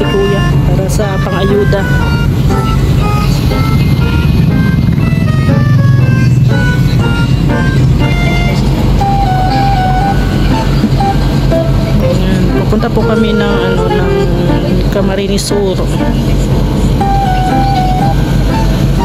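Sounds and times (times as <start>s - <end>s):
engine and road rumble in bus: 0.0s - 19.0s
simple music melody: 0.0s - 19.0s.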